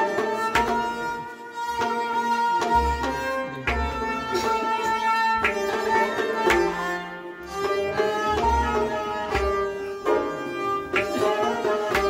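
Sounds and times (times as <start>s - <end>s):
bowed string melody: 0.0s - 12.0s.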